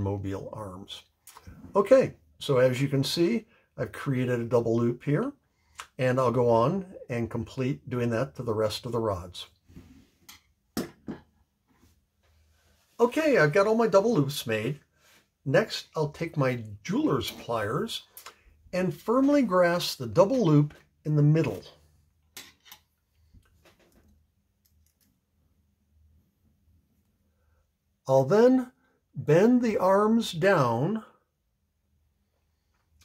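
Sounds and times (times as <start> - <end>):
tools knocking on tabletop: 10.8 - 11.3.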